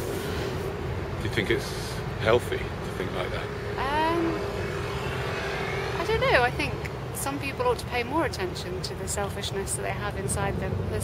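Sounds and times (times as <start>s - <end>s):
faint rising whine: 0.0s - 7.8s
engine drone: 0.0s - 11.0s.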